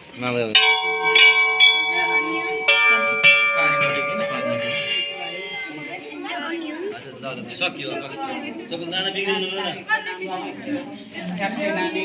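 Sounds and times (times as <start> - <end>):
temple bells ringing: 0.5 - 6.6.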